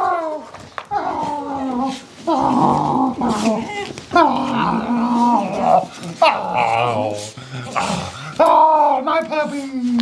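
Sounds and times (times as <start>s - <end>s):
dogs whining and yowling: 0.0s - 9.7s
man's voice: 8.5s - 10.0s.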